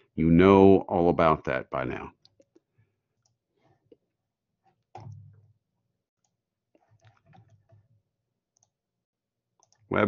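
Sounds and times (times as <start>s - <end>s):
computer mouse clicks: 8.5s - 8.8s, 9.6s - 9.9s.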